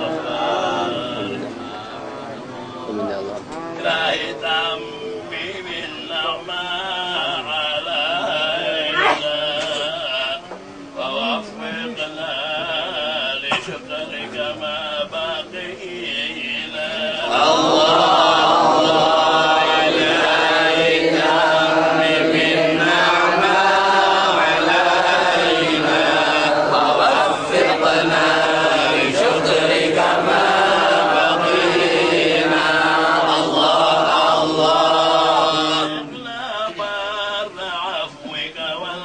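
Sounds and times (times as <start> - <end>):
male voices chanting: 0.0 - 2.3, 3.7 - 39.0.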